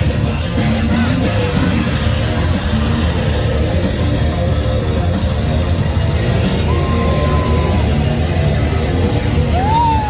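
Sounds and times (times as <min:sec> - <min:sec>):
live heavy metal music: 0:00.0 - 0:10.0.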